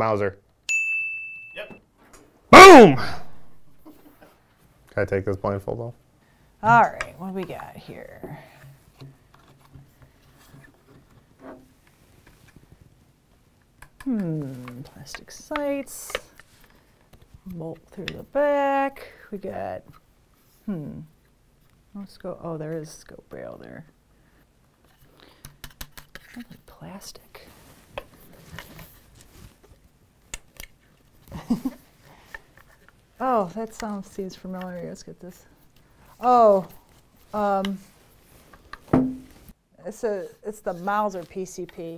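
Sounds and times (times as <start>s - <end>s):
faint rubbing and light knocks: 7.4s - 13.0s.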